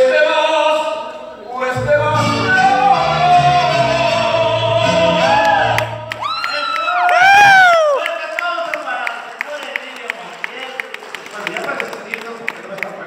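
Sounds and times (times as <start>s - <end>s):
man singing into a microphone: 1.7s - 5.8s
backing music: 1.7s - 6.2s.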